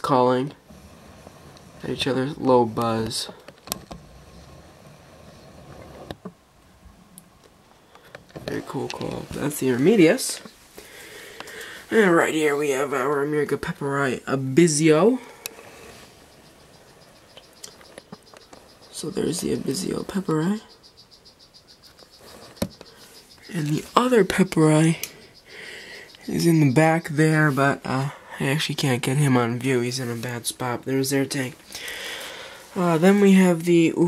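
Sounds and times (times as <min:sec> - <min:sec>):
steady low hum: 0:00.0 - 0:34.0
frogs calling with low buzz: 0:00.1 - 0:34.0
frog pulsed trill: 0:16.1 - 0:28.0.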